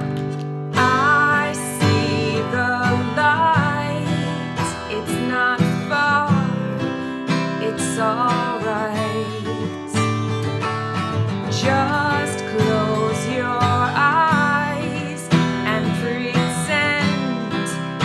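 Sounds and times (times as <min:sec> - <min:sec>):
acoustic guitar strumming: 0:00.0 - 0:18.0
woman singing: 0:00.8 - 0:10.4, 0:11.4 - 0:18.0.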